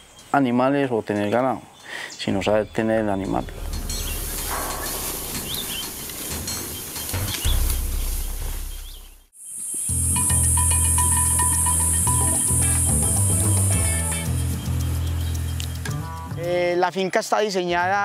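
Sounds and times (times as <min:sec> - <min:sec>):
bird chirps: 0:00.0 - 0:16.2
background music with low notes: 0:02.3 - 0:09.3, 0:09.9 - 0:17.0.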